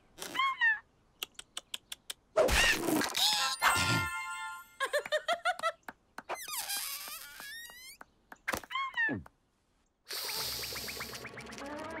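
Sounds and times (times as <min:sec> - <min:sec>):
gliding squeak: 0:06.3 - 0:08.0.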